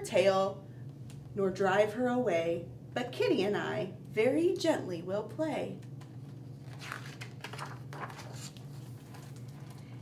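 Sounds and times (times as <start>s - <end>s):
steady low hum: 0.0s - 10.0s
paper rustling as page turned: 6.0s - 10.0s.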